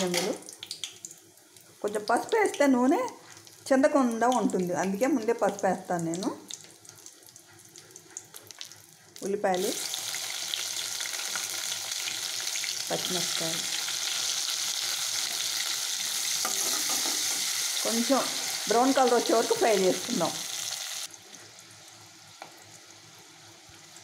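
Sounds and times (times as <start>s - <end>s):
chillies crackling in oil: 0.0s - 22.8s
loud oil sizzle: 0.0s - 24.0s.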